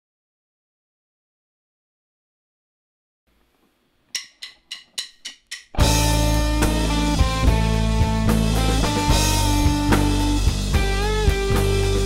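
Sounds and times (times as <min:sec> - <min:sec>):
quick count-in clicks: 0:04.2 - 0:05.8
rock band playing loudly: 0:05.8 - 0:12.0.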